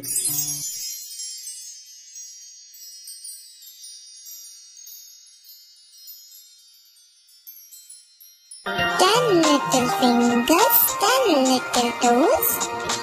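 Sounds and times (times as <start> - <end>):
shimmering high bell tones: 0.0 - 10.5.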